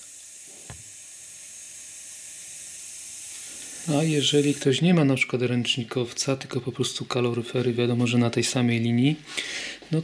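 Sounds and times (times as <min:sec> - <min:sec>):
air hissing from radiator valve: 0:03.4 - 0:04.6.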